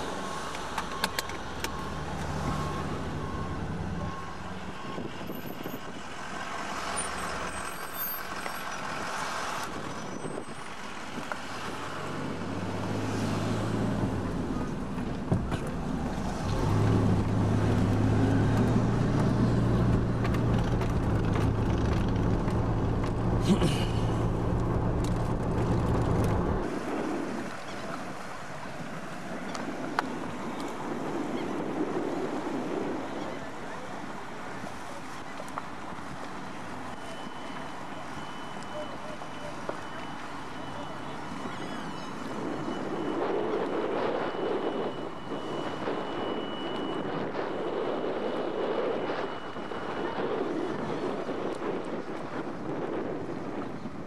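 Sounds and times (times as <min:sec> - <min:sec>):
road noise: 0:00.0 - 0:54.0
car engine hum: 0:09.2 - 0:32.8.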